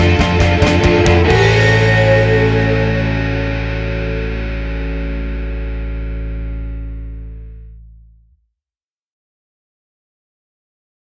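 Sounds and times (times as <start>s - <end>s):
distorted electric guitar chord: 0.0s - 8.2s
bass guitar: 0.0s - 8.4s.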